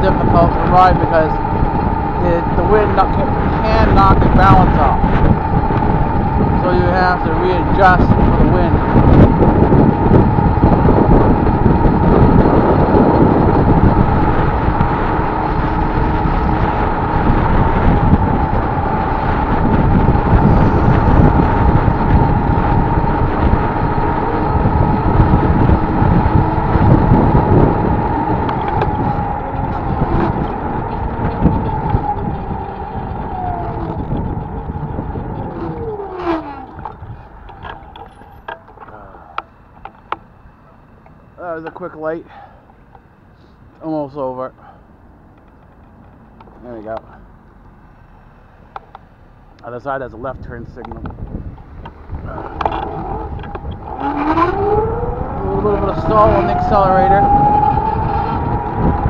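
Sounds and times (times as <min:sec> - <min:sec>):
wind on microphone: 0:00.0 - 0:41.6, 0:49.7 - 0:59.0
steady whine: 0:00.0 - 0:59.0.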